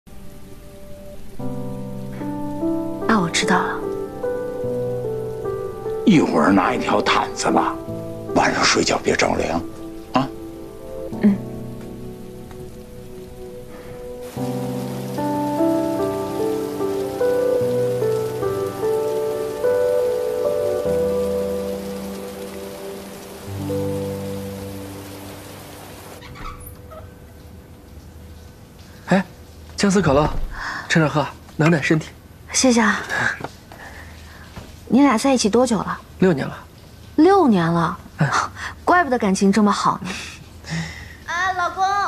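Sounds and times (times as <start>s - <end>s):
soft background music: 0.0s - 40.7s
steady rain: 0.1s - 42.0s.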